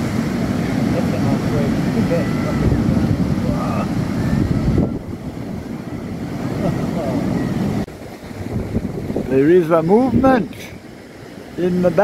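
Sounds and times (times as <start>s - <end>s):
breaking surf rumble: 0.0s - 12.0s
wind buffeting microphone: 0.0s - 12.0s.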